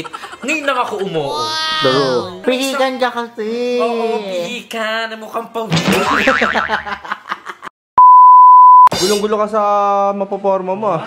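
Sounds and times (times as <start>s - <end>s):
laughing speech: 0.0s - 4.7s
censor bleep: 8.0s - 8.9s.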